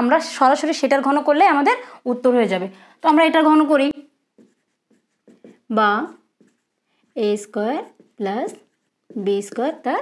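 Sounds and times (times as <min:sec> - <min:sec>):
woman speaking: 0:00.0 - 0:04.1, 0:05.6 - 0:06.3, 0:07.2 - 0:10.0
marker writing on whiteboard: 0:03.9 - 0:10.0.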